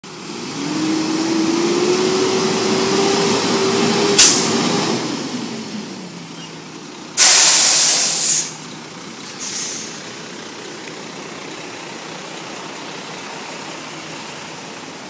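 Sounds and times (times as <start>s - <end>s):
garbage truck engine revving: 0.1s - 6.3s
sharp burst of air: 4.1s - 4.7s, 7.2s - 8.6s, 9.3s - 10.0s
air brakes hissing: 4.2s - 4.6s, 7.2s - 8.6s, 9.2s - 10.1s.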